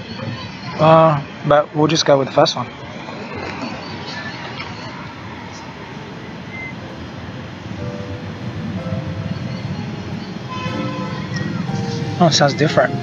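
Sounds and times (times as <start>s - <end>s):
steady rumbling background noise: 0.0s - 13.0s
held musical notes: 6.8s - 13.0s.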